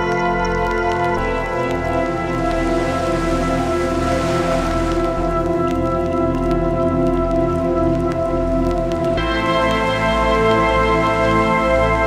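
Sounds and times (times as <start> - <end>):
synth chords over low bass: 0.0 - 12.0.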